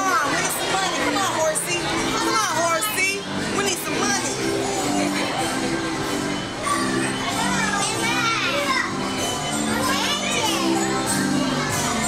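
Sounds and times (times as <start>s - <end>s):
carousel music: 0.0s - 12.0s
children's voices: 0.0s - 12.0s.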